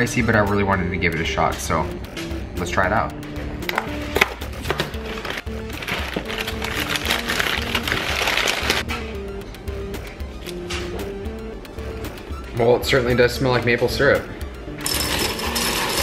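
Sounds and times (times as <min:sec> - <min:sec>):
background music with held notes: 0:00.0 - 0:16.0
plastic bag crinkling: 0:05.0 - 0:08.8.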